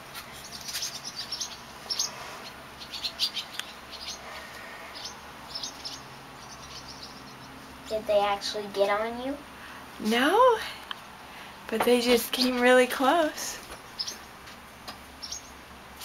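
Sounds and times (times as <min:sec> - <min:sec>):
swallows chirping: 0:00.4 - 0:08.6, 0:13.8 - 0:14.4, 0:15.2 - 0:15.6.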